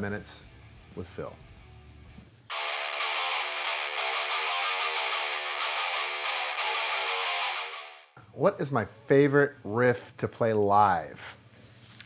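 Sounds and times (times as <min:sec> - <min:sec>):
distorted electric guitar riff: 0:00.8 - 0:08.2.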